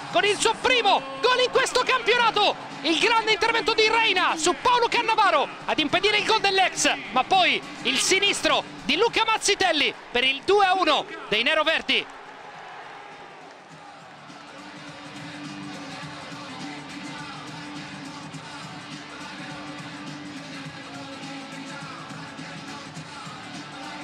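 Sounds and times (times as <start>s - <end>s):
crowd chanting: 0.0s - 20.0s
stadium crowd cheering: 0.0s - 24.0s.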